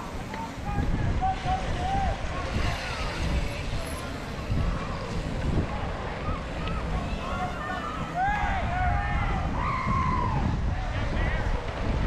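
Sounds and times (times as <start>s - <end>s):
distant voices shouting: 0.0s - 12.0s
mountain bikes rolling on dirt: 0.0s - 12.0s
wind on microphone: 0.0s - 12.0s.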